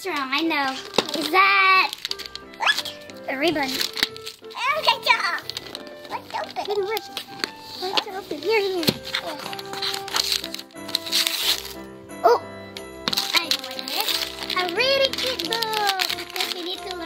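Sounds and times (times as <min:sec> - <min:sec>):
child's voice: 0:00.0 - 0:02.0, 0:02.6 - 0:03.9, 0:04.5 - 0:07.2, 0:07.8 - 0:09.6, 0:13.2 - 0:17.0
wrapping paper rustling and tearing: 0:00.0 - 0:12.4, 0:13.0 - 0:17.0
background music: 0:00.0 - 0:17.0.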